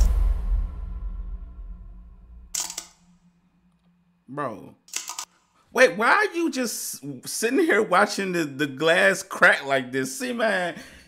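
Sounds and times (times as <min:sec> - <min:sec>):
low rumble: 0:00.0 - 0:02.6.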